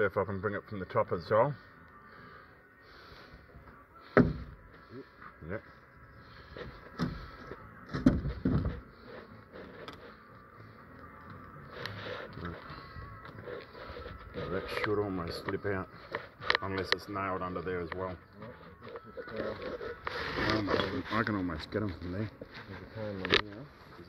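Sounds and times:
wall sheet creaking and scraping: 18.4 - 23.7.

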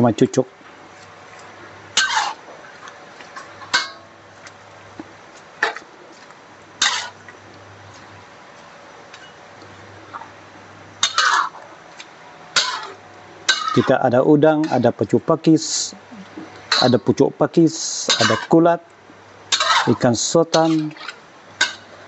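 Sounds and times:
faint steady hum: 0.0 - 22.0
metal spatula scraping wok: 2.0 - 2.4, 6.8 - 7.2, 11.0 - 11.6, 18.1 - 18.6, 19.5 - 20.0, 20.6 - 22.0.

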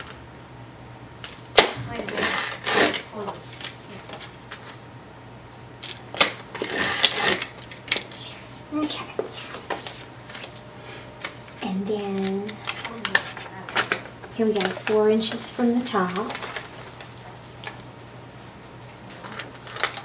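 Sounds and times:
paper cards rustling: 1.2 - 4.8, 5.5 - 20.0.

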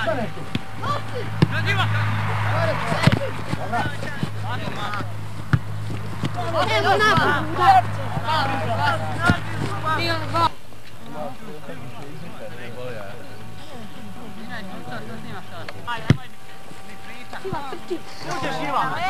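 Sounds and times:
people shouting and calling: 0.0 - 5.2, 5.9 - 10.5
steady low hum: 0.0 - 19.0.

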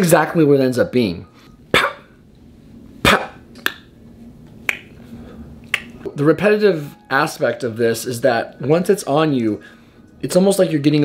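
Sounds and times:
finger snaps: 3.6 - 3.9, 4.6 - 5.0, 5.6 - 6.0.

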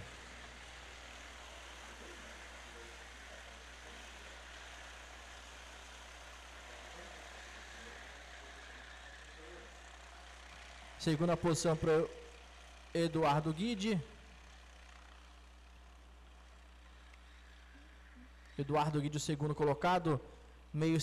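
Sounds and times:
distant kart engines racing: 0.0 - 21.0.

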